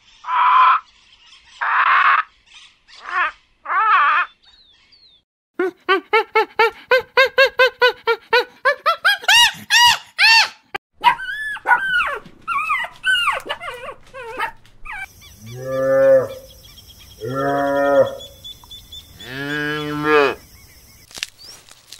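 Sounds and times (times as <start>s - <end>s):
monkeys squealing: 9.0s - 15.8s
cattle mooing: 15.4s - 16.5s, 17.2s - 18.3s, 19.2s - 20.4s.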